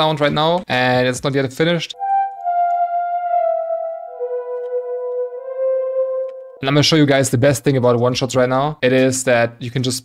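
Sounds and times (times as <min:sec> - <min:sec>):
synth lead melody: 0:02.0 - 0:07.0.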